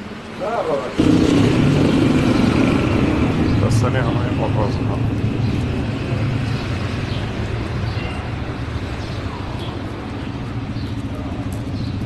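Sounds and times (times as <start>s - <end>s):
street noise: 0.0s - 12.0s
vehicle engine humming: 0.0s - 12.0s.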